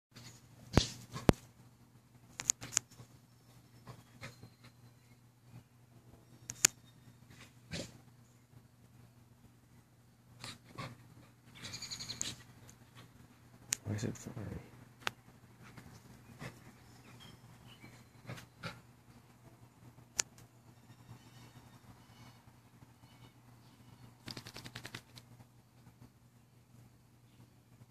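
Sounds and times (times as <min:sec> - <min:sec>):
dogs yipping and snapping: 0:11.6 - 0:12.8.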